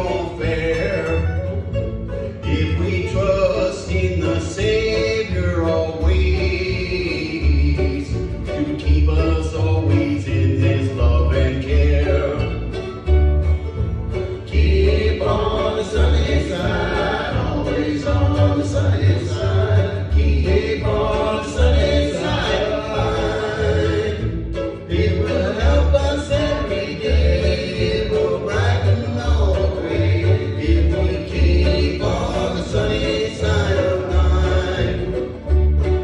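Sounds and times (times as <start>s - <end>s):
men singing in harmony: 0.0s - 1.4s, 2.5s - 12.5s, 14.4s - 35.4s
mandolin and acoustic strings: 0.0s - 36.0s
upright bass plucking: 0.0s - 36.0s.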